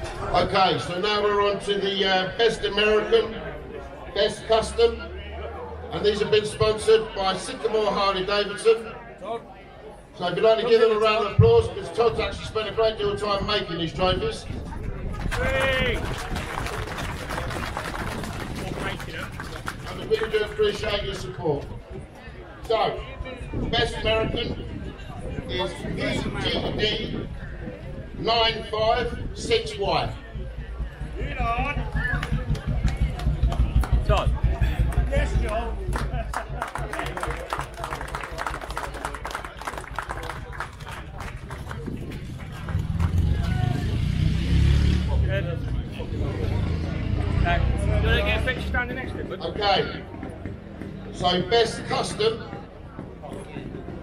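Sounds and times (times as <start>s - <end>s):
crowd applauding: 15.0s - 21.4s, 31.9s - 44.0s.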